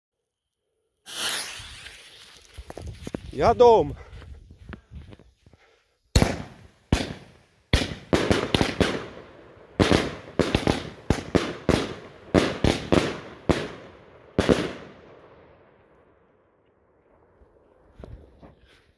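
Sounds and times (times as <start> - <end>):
firework bangs: 1.1 - 2.2, 6.1 - 14.9.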